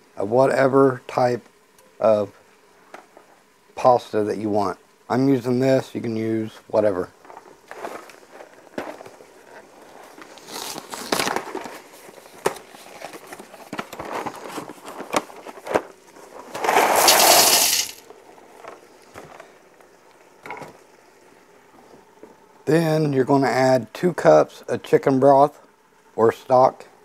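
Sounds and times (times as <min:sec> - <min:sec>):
cardboard box crinkling: 0:07.7 - 0:17.1
dry pasta pouring into a pot: 0:16.6 - 0:18.0.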